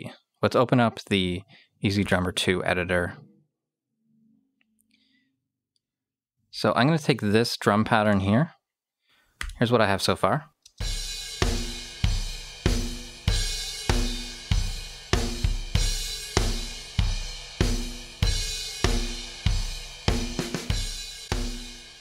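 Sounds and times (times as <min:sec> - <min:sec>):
kick and snare drum hits: 0:10.8 - 0:21.7
hi-hat and cymbals: 0:10.8 - 0:22.0.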